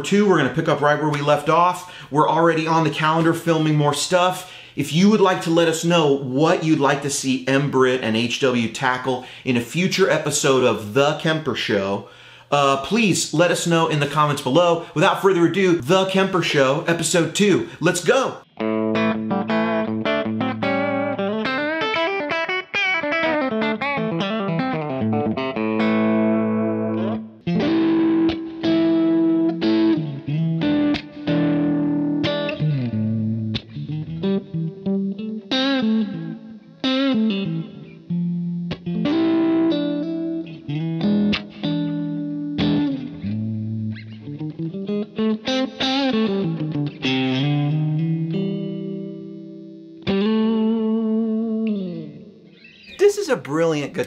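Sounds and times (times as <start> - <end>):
overdriven electric guitar lead: 18.5 - 54.0.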